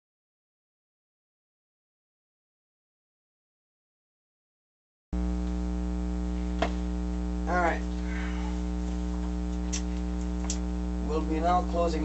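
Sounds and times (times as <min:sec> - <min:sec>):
electrical mains hum: 0:05.2 - 0:12.0.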